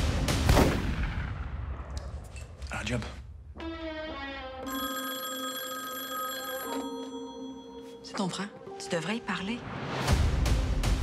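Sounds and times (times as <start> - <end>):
telephone bell ringing: 4.6 - 8.0.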